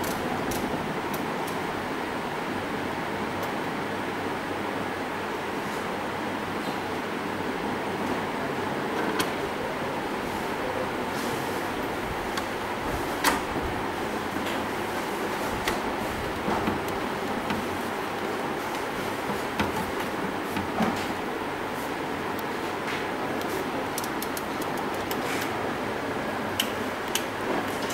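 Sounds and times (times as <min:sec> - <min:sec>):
room hum and hiss: 0:00.0 - 0:27.9
light clicks and knocks: 0:18.7 - 0:21.2.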